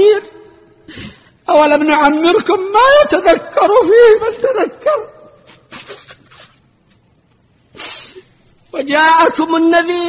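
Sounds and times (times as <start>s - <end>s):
echo of man's voice: 8.7s - 10.0s.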